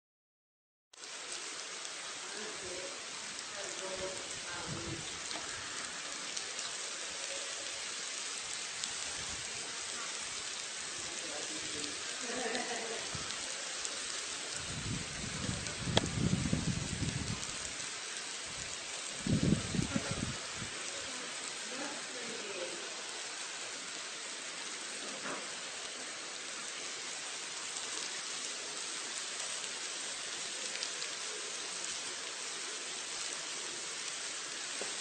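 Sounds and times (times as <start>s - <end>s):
fine crackling hiss of ants: 1.0s - 35.0s.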